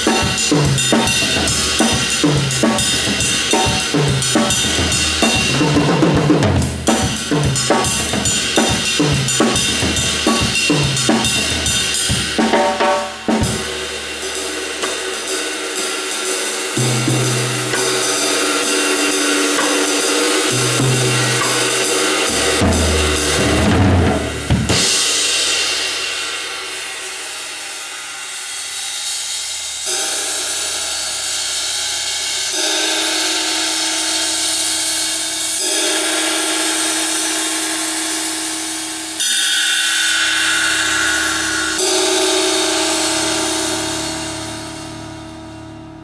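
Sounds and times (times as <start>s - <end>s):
ride cymbal ringing: 6.8s - 23.7s, 29.9s - 45.5s.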